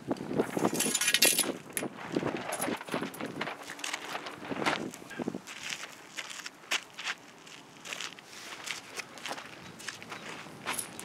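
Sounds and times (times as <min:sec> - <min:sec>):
plastic tarp rustling: 0:00.6 - 0:06.1.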